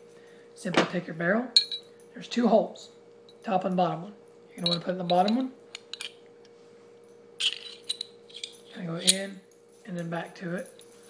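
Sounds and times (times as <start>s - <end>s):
pistol parts clicking: 4.6s - 6.2s, 7.4s - 9.2s.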